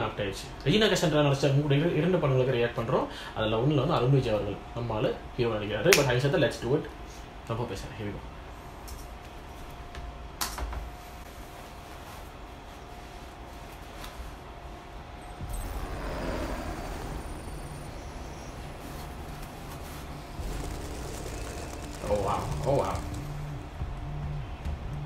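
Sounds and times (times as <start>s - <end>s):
low rumble: 15.3s - 25.0s
whoosh: 15.4s - 23.8s.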